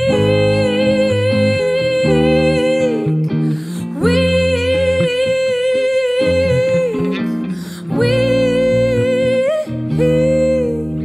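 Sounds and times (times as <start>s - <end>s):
bass notes: 0.0s - 11.0s.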